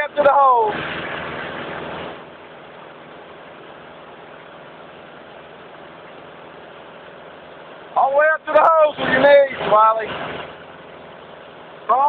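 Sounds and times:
wake water rushing: 0.0s - 2.4s, 6.0s - 12.0s
boat motor running: 0.0s - 12.0s.

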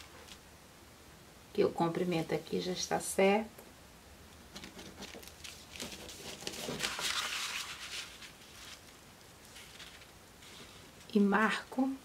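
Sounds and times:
paper sheet rustling and sliding: 4.6s - 10.8s.

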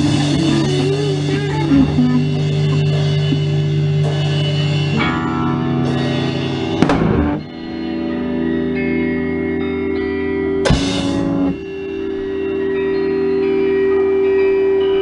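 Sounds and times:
droning electric guitar: 0.0s - 15.0s.

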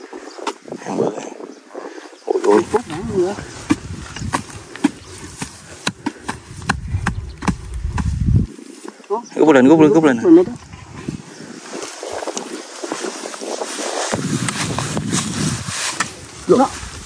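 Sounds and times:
metal digging tool striking clay: 3.6s - 8.2s.

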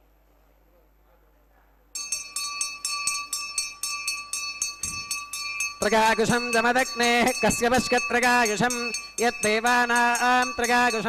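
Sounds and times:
hand bell ringing rapidly: 2.0s - 11.0s.

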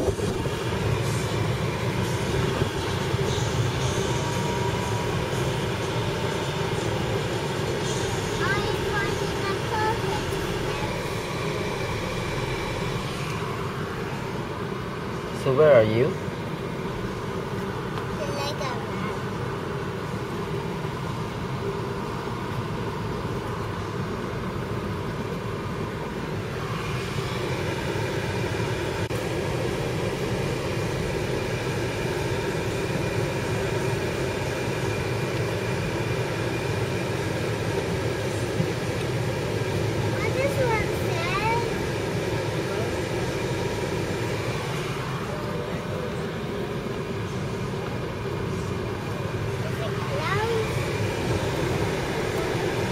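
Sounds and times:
car engine and road noise: 0.0s - 52.9s.

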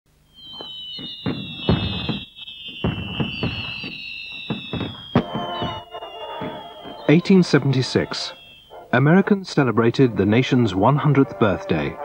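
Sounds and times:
high thin firework whistles: 0.4s - 7.3s
fireworks bangs and crackling: 0.4s - 8.5s.

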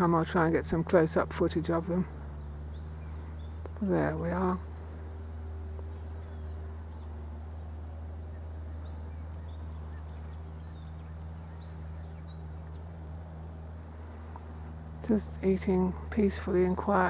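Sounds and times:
small birds chirping: 0.0s - 17.0s
steady low hum: 0.0s - 17.0s.

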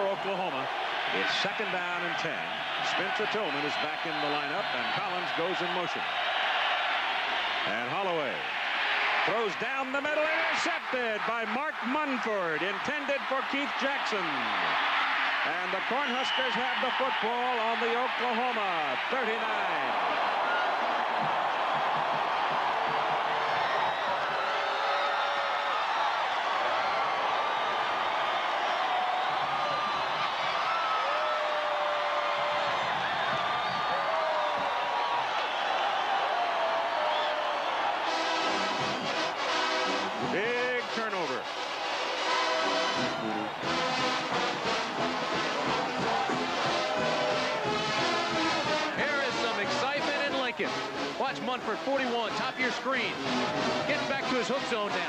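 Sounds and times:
stadium crowd cheering: 0.0s - 55.0s
band playing brass and drums: 38.0s - 52.5s, 53.1s - 55.0s.

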